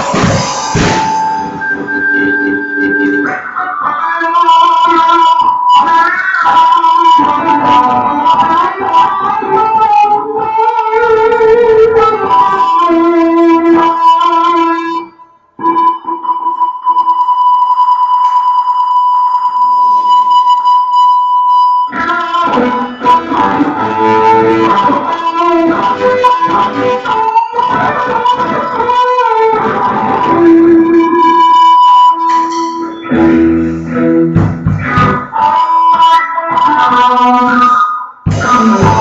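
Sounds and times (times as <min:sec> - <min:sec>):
drum kit playing: 0:00.0 - 0:03.8, 0:32.3 - 0:35.4, 0:38.3 - 0:39.0
electric guitar: 0:00.0 - 0:39.0.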